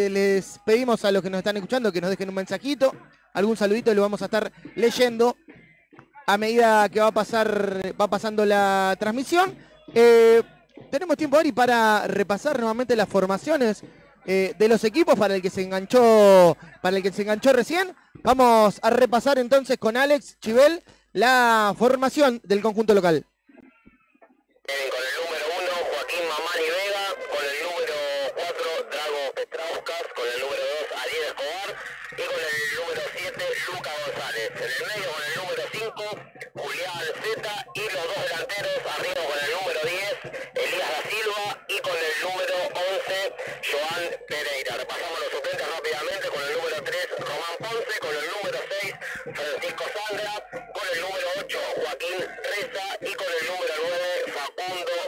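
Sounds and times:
music: 0.1 - 18.8
radio-like voice talking: 24.7 - 55.0.

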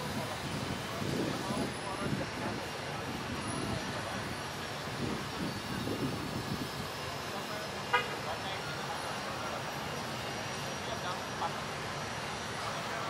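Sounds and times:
people talking indistinctly: 0.0 - 13.0
short horn toot: 7.9 - 8.2.

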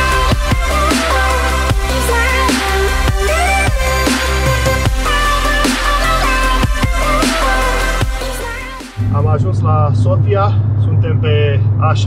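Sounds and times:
car road and engine drone: 0.0 - 12.0
man talking: 9.0 - 12.0.

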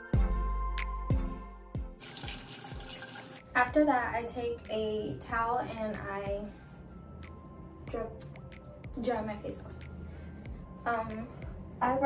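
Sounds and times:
plucked background music: 0.0 - 12.0
tap water splashing in sink: 2.0 - 3.4.

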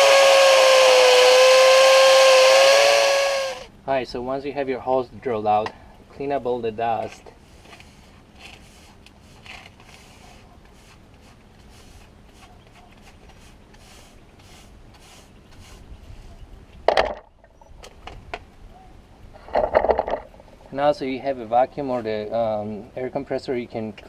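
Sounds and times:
brush sweeping concrete: 7.3 - 16.4.

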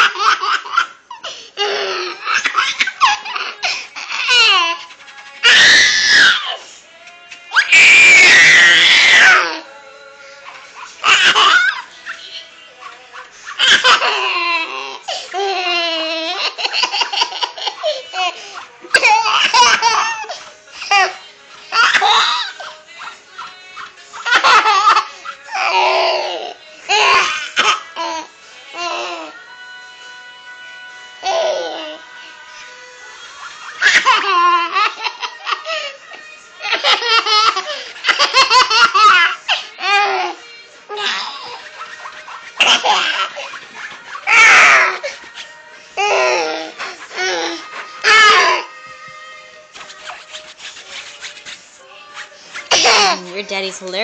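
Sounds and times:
baby laughing: 0.0 - 6.6, 10.8 - 23.6, 24.2 - 29.3, 33.6 - 36.0, 36.6 - 45.2, 46.0 - 48.7, 52.7 - 53.3
hand scratching: 4.2 - 6.5, 41.3 - 53.2.

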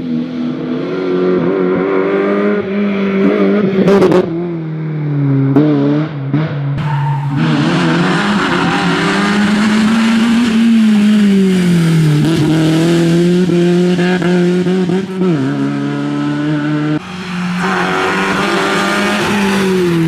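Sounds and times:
rally car engine at high revs: 0.0 - 4.6, 5.2 - 20.0.

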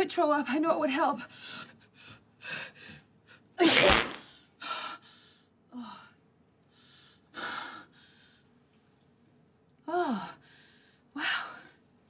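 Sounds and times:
violent sneeze: 3.6 - 4.2.

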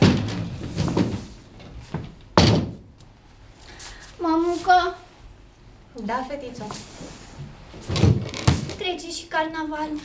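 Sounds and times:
loud thud: 2.4 - 2.9.

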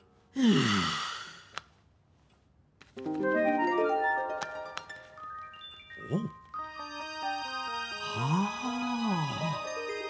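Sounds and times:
man sighing: 0.3 - 1.5.

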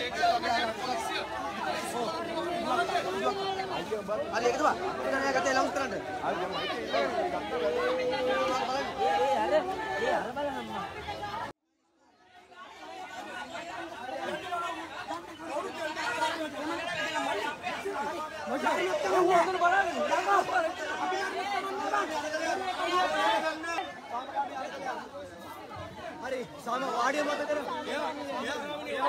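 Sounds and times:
crowd talking: 0.0 - 29.0.

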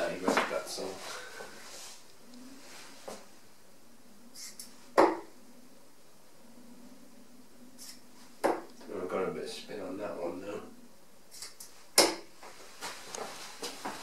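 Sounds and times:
darts thudding into dartboard: 5.0 - 5.3, 12.0 - 12.3.

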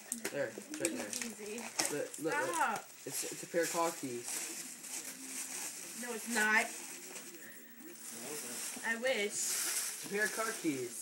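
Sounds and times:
soft voices murmuring: 0.0 - 10.7
tissue paper rustling: 0.8 - 11.0.

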